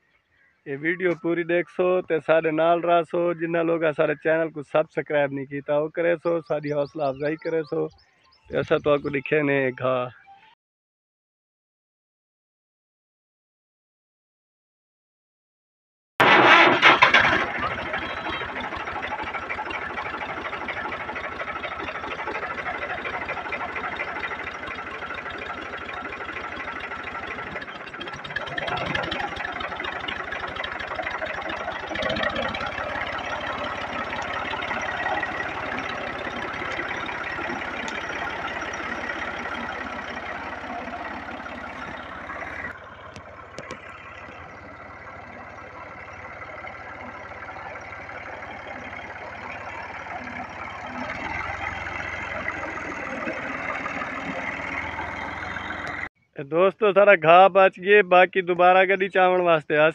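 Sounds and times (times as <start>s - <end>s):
tractor diesel engine running: 0.0s - 9.8s, 16.2s - 56.1s.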